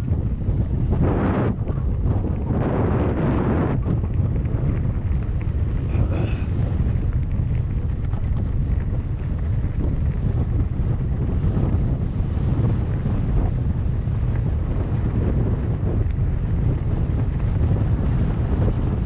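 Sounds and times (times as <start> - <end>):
gravel crackles: 0.0 - 19.0
wind rumbling over microphone: 0.0 - 19.0.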